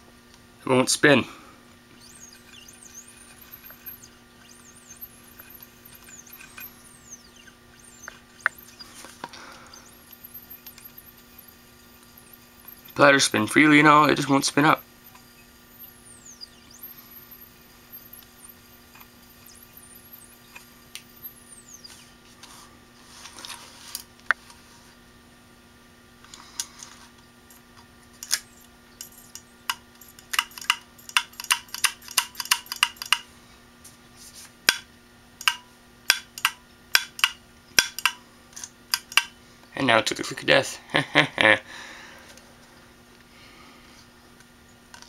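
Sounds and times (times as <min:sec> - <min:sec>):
hard drive humming: 0:00.0 - 0:33.8, 0:34.6 - 0:45.0
hard drive head clicking: 0:02.0 - 0:22.0, 0:27.5 - 0:33.3, 0:34.7 - 0:39.4.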